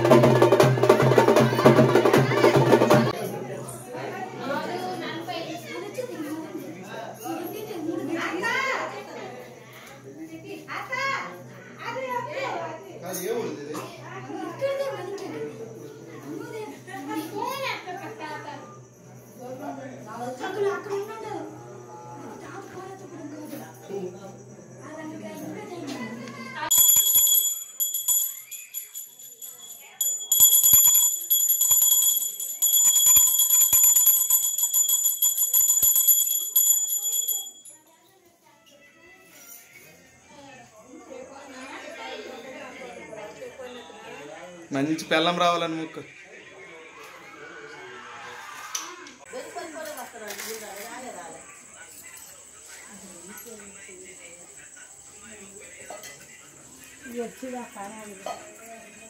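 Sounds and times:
people talking faintly: 0:00.0 - 0:59.0
brass hand bell ringing: 0:26.7 - 0:37.8.

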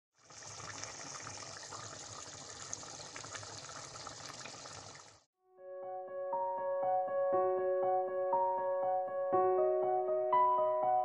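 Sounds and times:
stew sizzling and bubbling: 0:00.1 - 0:05.3
piano music: 0:05.4 - 0:11.0.

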